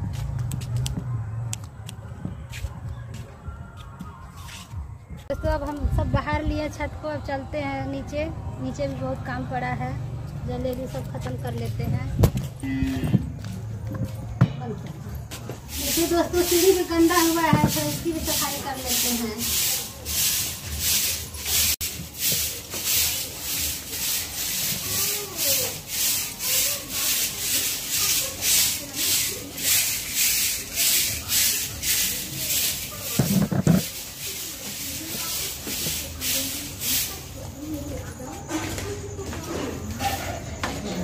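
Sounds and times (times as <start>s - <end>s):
hand broom sweeping concrete steps: 15.3s - 41.0s.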